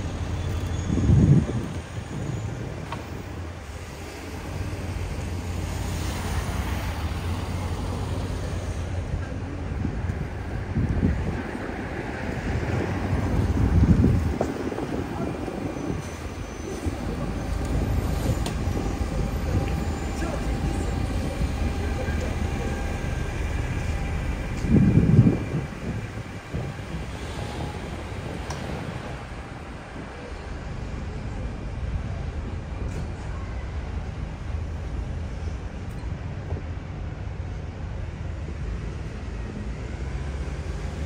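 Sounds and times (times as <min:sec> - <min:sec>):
low traffic rumble: 0:00.0 - 0:41.0.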